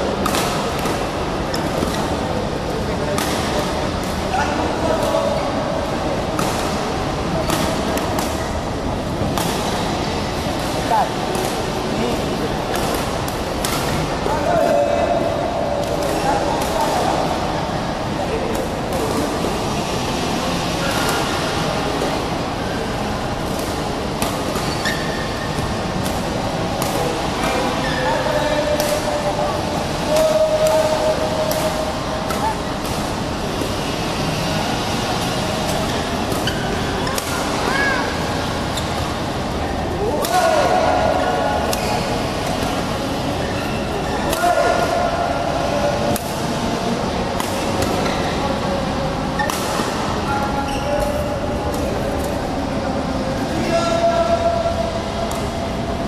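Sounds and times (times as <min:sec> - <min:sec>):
voices in a hall: 0:00.0 - 0:56.0
shoes squeaking on court: 0:24.6 - 0:25.6.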